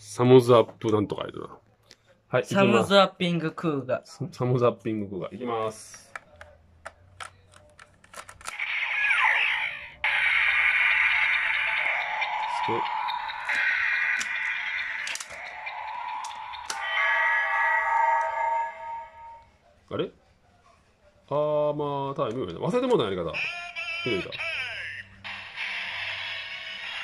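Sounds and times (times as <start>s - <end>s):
toy electronic sound effects: 8.5s - 19.4s, 23.4s - 27.0s
looping electronic tune: 8.6s - 19.4s.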